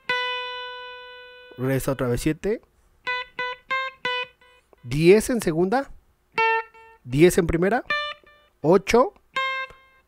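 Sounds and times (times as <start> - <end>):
clean electric guitar notes: 0.0 - 2.1, 3.0 - 4.8, 9.4 - 10.0.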